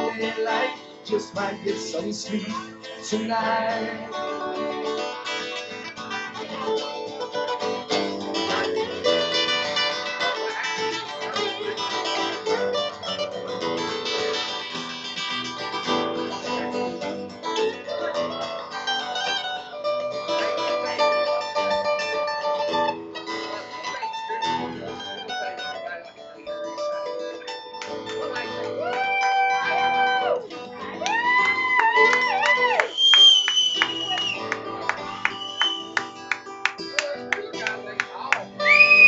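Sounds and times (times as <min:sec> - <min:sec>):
acoustic guitar strumming chords: 0:00.0 - 0:39.0
lead guitar picking: 0:00.0 - 0:39.0.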